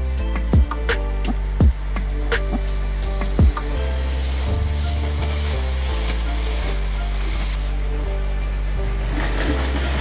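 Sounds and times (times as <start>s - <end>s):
background music: 0.0s - 10.0s
model train wagons rattling: 2.6s - 10.0s.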